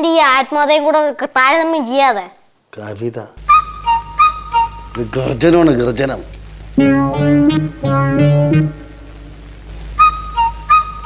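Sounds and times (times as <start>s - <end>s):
short high comic notes: 6.8s - 9.3s.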